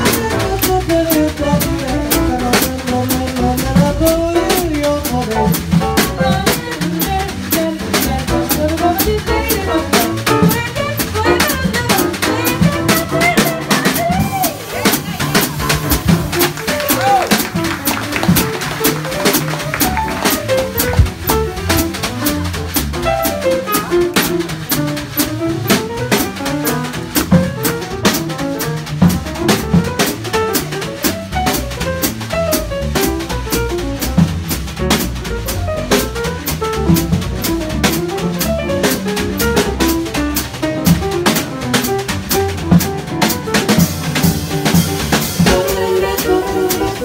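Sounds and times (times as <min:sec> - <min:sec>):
drum kit with cymbals: 0:00.0 - 0:47.0
piano: 0:00.0 - 0:47.0
upright bass walking: 0:00.0 - 0:47.0
women singing: 0:45.5 - 0:47.0.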